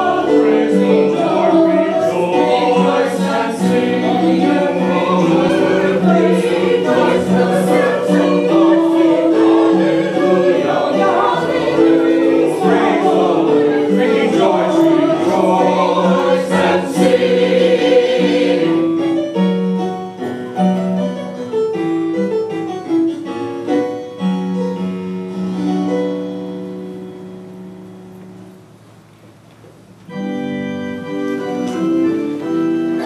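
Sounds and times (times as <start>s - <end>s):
choir singing: 0.0s - 19.2s.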